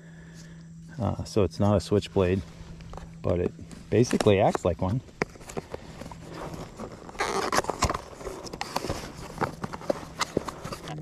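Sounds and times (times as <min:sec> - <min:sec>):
cardboard scraping rustle: 0:02.3 - 0:11.0.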